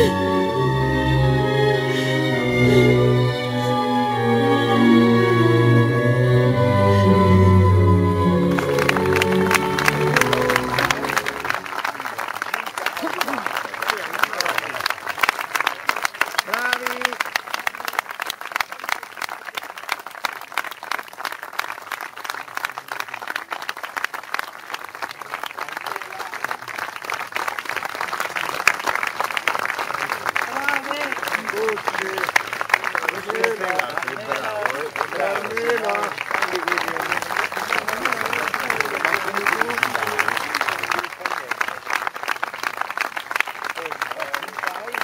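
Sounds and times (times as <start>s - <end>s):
orchestral music: 0.0s - 11.9s
audience applause: 8.3s - 45.0s.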